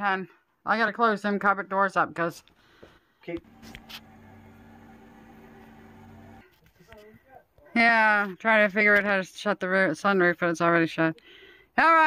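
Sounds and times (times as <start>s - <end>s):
faint low mechanical hum: 3.4s - 6.4s.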